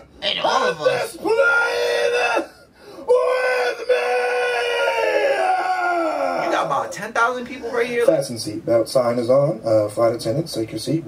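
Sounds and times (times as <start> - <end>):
person screaming: 0.8 - 6.7.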